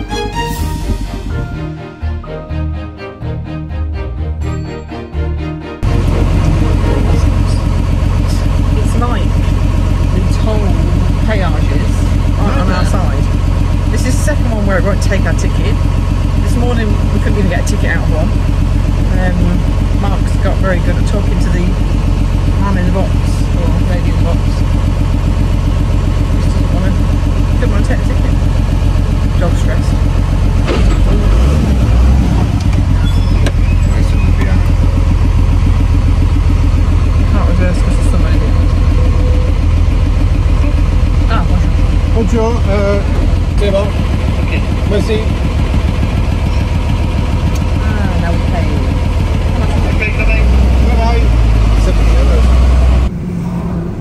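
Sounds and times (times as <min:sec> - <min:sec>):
truck engine idling: 0:00.0 - 0:54.0.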